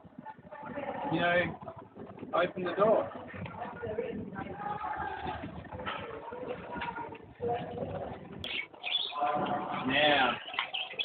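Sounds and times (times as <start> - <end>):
low bird calls: 8.0 - 11.0
high bird chirps: 8.4 - 9.2, 10.3 - 11.0.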